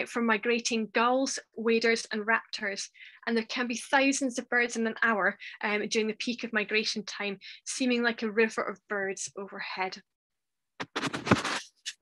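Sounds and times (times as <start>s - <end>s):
scratchy rustling: 10.8s - 12.0s
short scrape: 10.8s - 12.0s.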